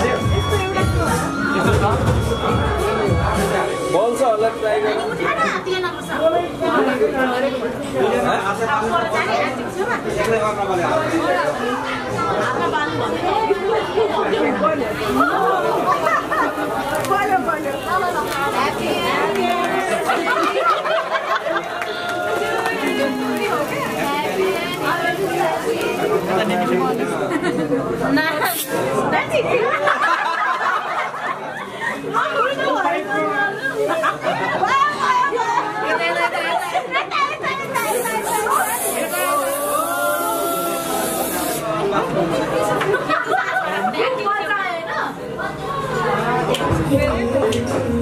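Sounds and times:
people chattering: 0:00.0 - 0:48.0
people talking and shouting: 0:00.0 - 0:48.0
aerosol spray hissing: 0:28.4 - 0:28.8, 0:37.8 - 0:41.7.

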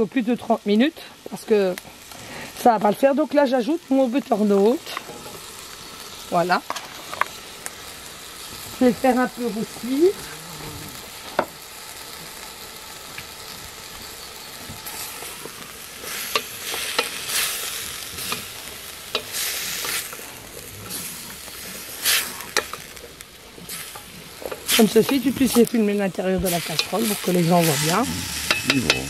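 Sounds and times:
wood fire hissing: 0:00.0 - 0:29.0
wooden spoon scraping metal pot: 0:26.4 - 0:29.0.

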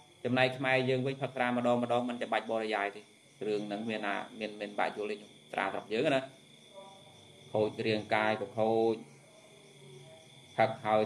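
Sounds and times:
man preaching: 0:00.3 - 0:06.3, 0:07.6 - 0:09.0, 0:10.6 - 0:11.0.

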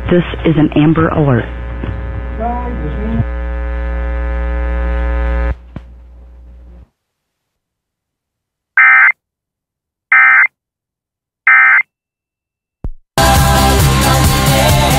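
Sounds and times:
electrical hum: 0:00.0 - 0:06.9
data tone bursts: 0:08.8 - 0:09.1, 0:10.1 - 0:10.5, 0:11.5 - 0:11.8.

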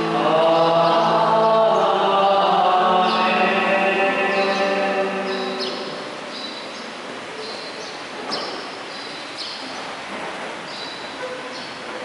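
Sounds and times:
man chanting: 0:00.0 - 0:06.0
steady background noise: 0:00.0 - 0:12.0
small birds chirping: 0:04.4 - 0:10.0, 0:10.6 - 0:11.8.

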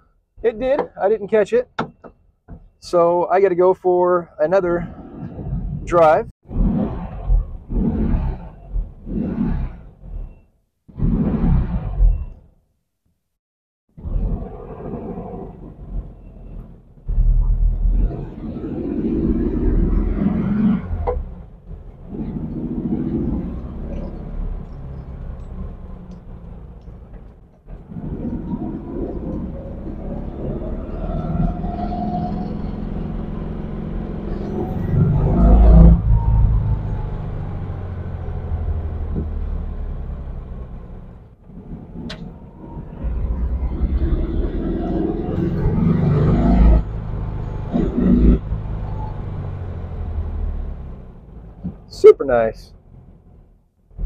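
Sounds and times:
car engine accelerating: 0:14.0 - 0:54.0.

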